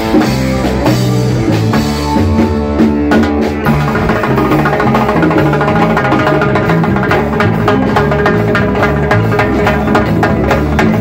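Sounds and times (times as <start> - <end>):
latin rock band playing: 0.0 - 11.0
stepping bass line: 0.0 - 11.0
timbales and congas: 0.0 - 11.0.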